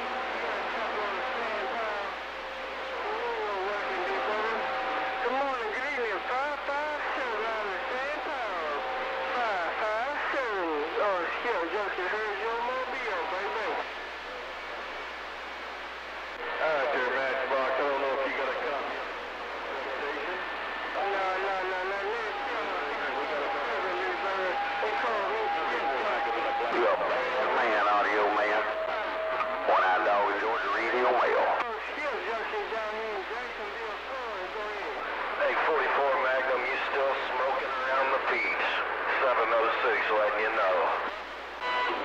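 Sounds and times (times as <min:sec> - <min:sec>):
garbled radio voices: 0:00.0 - 0:14.0, 0:16.4 - 0:42.0.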